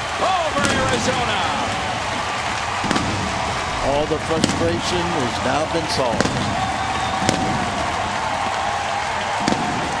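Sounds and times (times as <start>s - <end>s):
crowd cheering: 0.0s - 10.0s
sharp crack: 0.6s - 10.0s.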